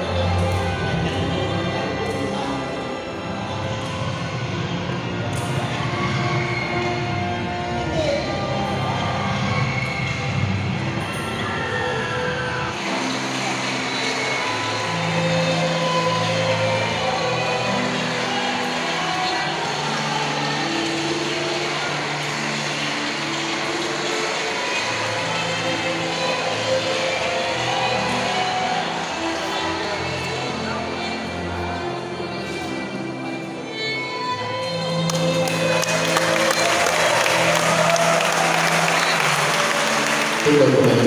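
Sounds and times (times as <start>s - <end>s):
film music over loudspeakers: 0.0s - 41.0s.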